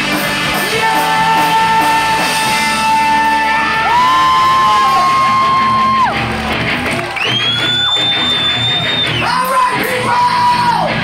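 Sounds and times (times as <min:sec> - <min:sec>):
drums: 0:00.0 - 0:11.0
electric guitar: 0:00.0 - 0:11.0
shouted vocals: 0:00.6 - 0:06.4, 0:08.8 - 0:11.0.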